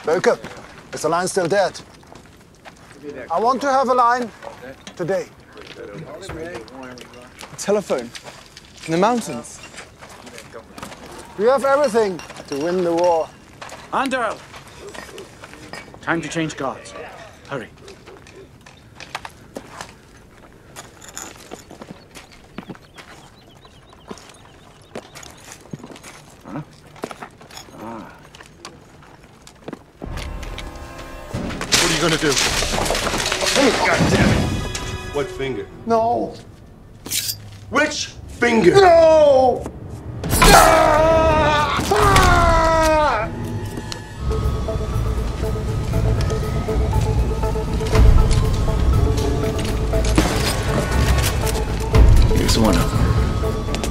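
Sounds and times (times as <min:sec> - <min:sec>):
pulsing tone music: 0:30.1 - 0:36.1, 0:43.4 - 0:53.9
man screaming in pain: 0:40.4 - 0:43.3.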